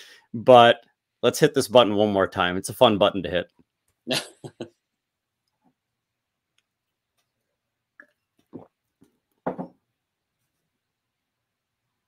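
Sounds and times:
man laughing: 0:04.1 - 0:04.8.

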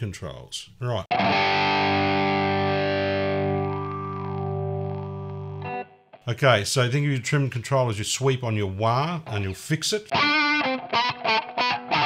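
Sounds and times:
electric guitar chord ringing: 0:01.1 - 0:06.0, 0:10.1 - 0:12.0.

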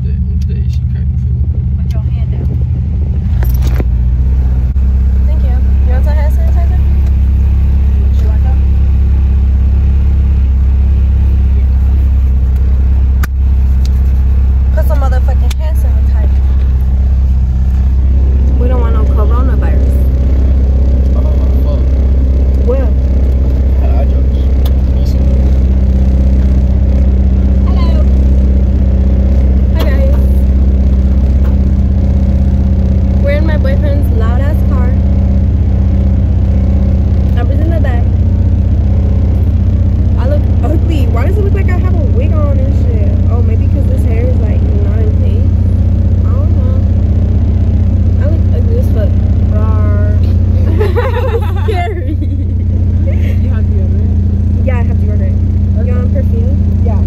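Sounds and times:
car engine drone and road noise: 0:00.0 - 0:57.0.

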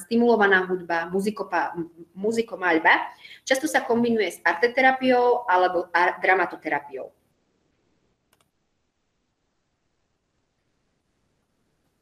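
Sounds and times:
computer mouse clicking: 0:08.3 - 0:08.5.

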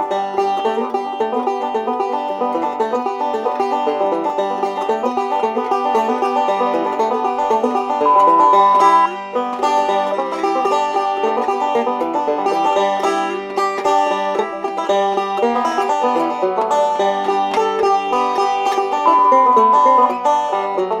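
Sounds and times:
banjo picking bluegrass tune: 0:00.0 - 0:21.0.

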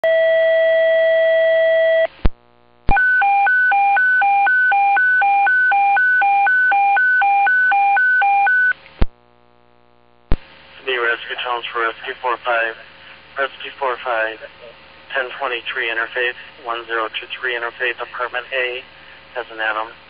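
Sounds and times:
radio click: 0:09.8 - 0:10.5.

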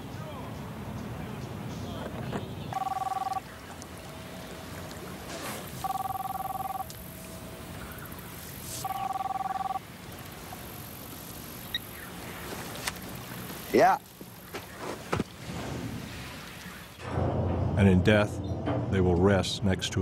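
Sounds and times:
telephone ringing two-tone trill: 0:02.7 - 0:03.4, 0:05.8 - 0:06.9, 0:08.8 - 0:09.8.

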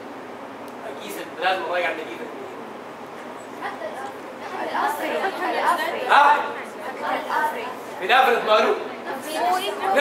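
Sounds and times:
people chattering in a room: 0:00.8 - 0:10.0.

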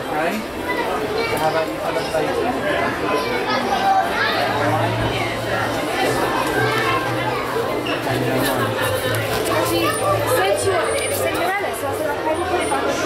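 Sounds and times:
people chattering: 0:00.0 - 0:13.0
children's voices: 0:00.4 - 0:13.0.

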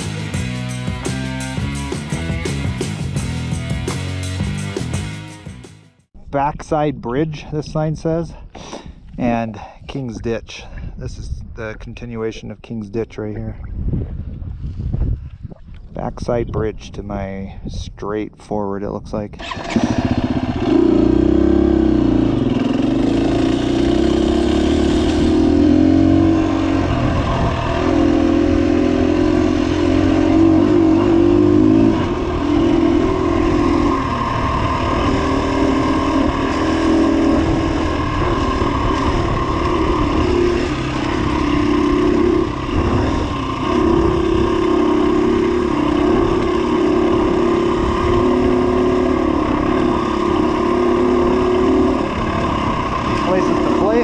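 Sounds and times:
dirt bike engine revving: 0:19.4 - 0:54.0.

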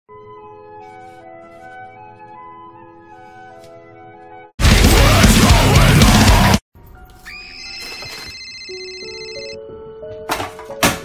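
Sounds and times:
telephone ringing: 0:07.4 - 0:09.6.

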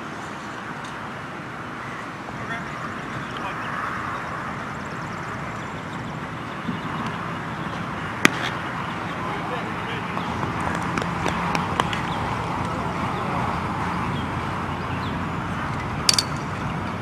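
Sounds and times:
murmur of voices: 0:09.1 - 0:10.6, 0:11.7 - 0:14.1.

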